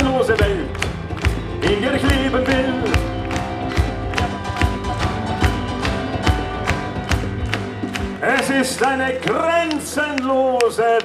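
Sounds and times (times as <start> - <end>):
steady drum beat: 0.0 - 9.9
sustained keyboard chords: 0.0 - 10.8.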